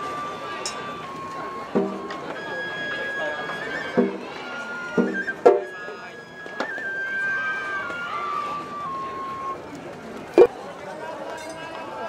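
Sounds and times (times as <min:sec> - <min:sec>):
bamboo flute high note: 0:00.0 - 0:09.6
murmur of crowd: 0:00.0 - 0:12.0.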